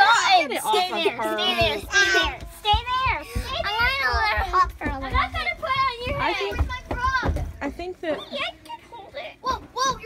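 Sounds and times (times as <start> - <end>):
young children talking: 0.0 - 10.0.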